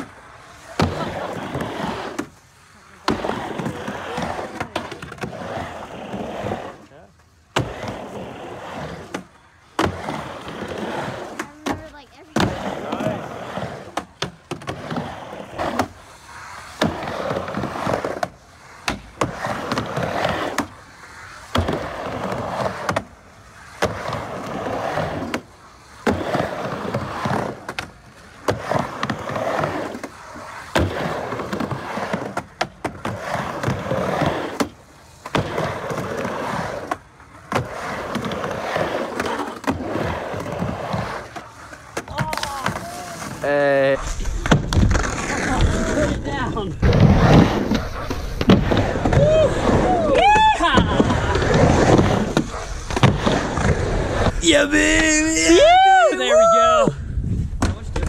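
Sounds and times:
skateboard wheels rolling on wood: 0.0 - 58.0
skateboard clacks: 7.5 - 55.9, 57.5 - 58.0.

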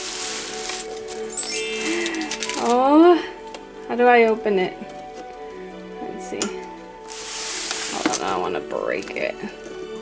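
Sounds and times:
plastic wrap crinkling: 0.0 - 2.8, 7.0 - 8.5
background music: 0.0 - 10.0.

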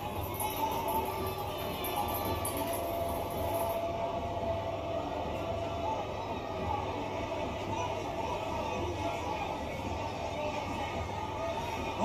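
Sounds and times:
arena crowd noise: 0.0 - 12.0
faint music: 0.0 - 12.0.

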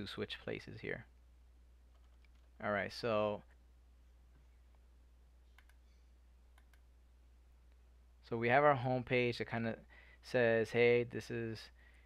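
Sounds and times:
computer mouse clicks: 1.9 - 2.6, 5.5 - 5.9, 6.5 - 6.9.

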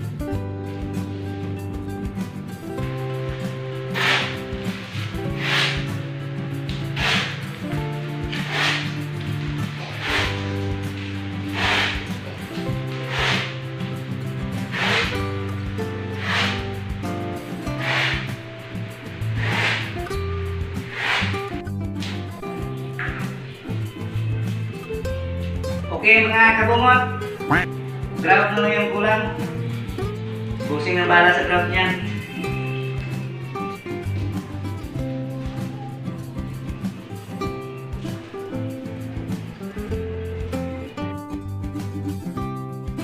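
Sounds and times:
slow background music: 0.0 - 43.0.

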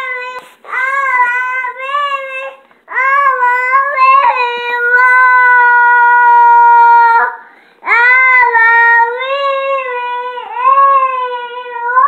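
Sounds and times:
young child singing: 0.0 - 12.0.

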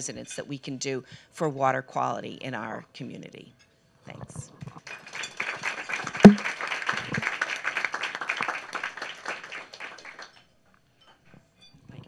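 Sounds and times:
people applauding: 4.8 - 10.4
sharp knock: 6.2 - 6.4.

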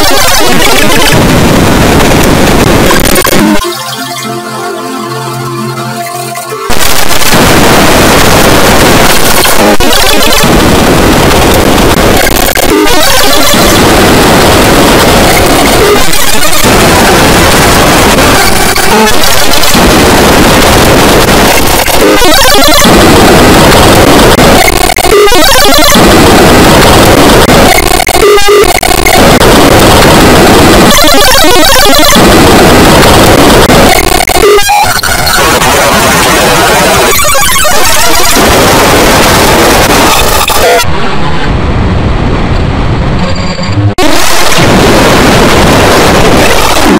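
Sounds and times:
distorted loud cartoon soundtrack: 0.0 - 46.9.

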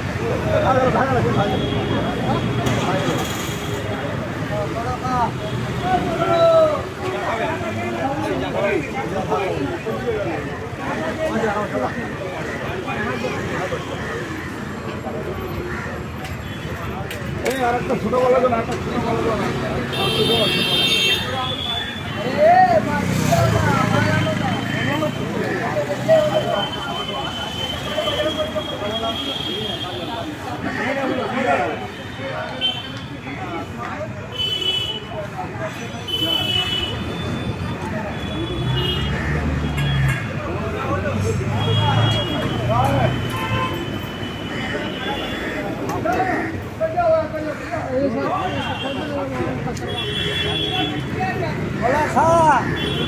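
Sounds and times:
people talking: 0.0 - 53.0
vehicle engines running: 22.6 - 27.5.

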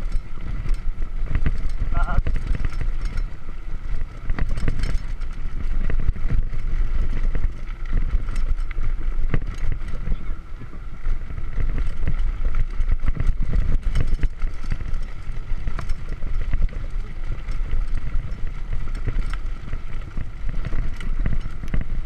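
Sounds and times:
bike rattling and knocking: 0.0 - 22.0
bike tyres rumbling on stones: 0.0 - 22.0
wind on microphone: 0.0 - 22.0.

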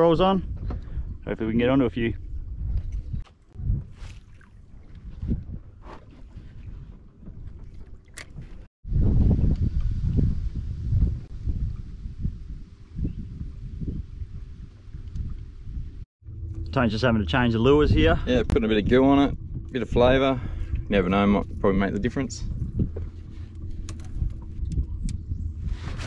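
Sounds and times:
wind on microphone: 0.0 - 16.1, 17.3 - 26.0
water lapping at a boat: 2.6 - 8.7.

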